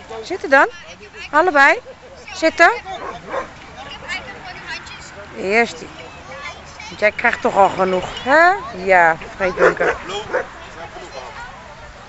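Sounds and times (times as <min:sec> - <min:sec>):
people talking: 0:00.0 - 0:12.0
huskies giving high-pitched calls: 0:01.7 - 0:04.2, 0:06.0 - 0:10.6.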